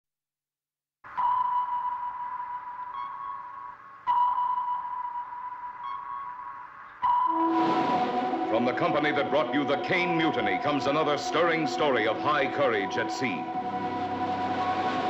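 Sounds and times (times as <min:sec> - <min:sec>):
music: 0:01.1 - 0:15.0
sonar pings: 0:01.2 - 0:10.4.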